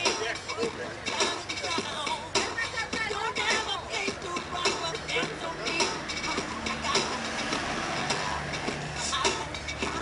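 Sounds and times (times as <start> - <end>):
bus engine humming: 0.0 - 10.0
city street traffic: 0.0 - 10.0.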